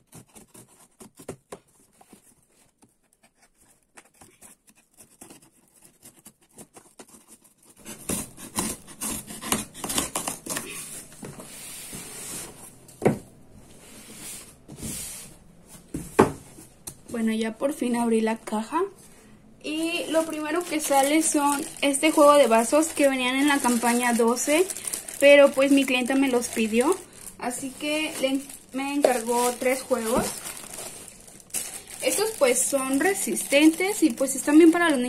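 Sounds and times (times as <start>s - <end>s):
faint scratching on cardboard: 0.0s - 9.6s
cardboard tearing and rustling: 0.0s - 12.6s, 20.0s - 35.0s.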